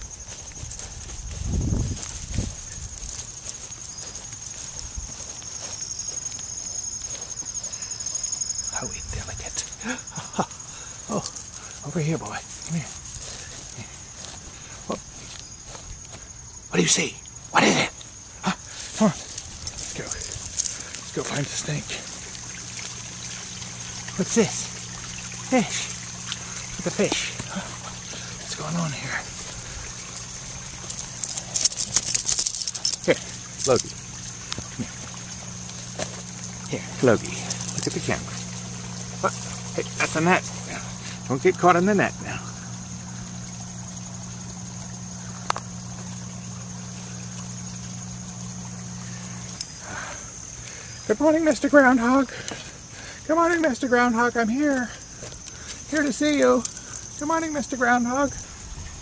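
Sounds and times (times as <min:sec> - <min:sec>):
water trickling: 0:00.0 - 0:16.1, 0:17.2 - 0:59.0
high insect drone: 0:00.0 - 0:59.0
low mechanical hum: 0:00.0 - 0:59.0.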